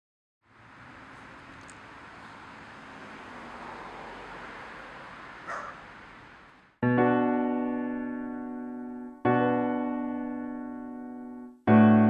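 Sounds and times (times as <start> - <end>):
outdoor background hiss: 0.5 - 6.8
dog bark: 5.4 - 5.9
piano chord: 6.8 - 12.0.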